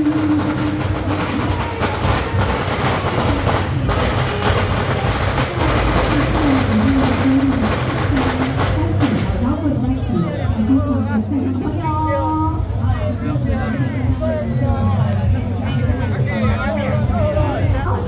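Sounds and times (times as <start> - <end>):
drums and gongs: 0.0 - 13.0
street crowd noise: 0.0 - 18.0.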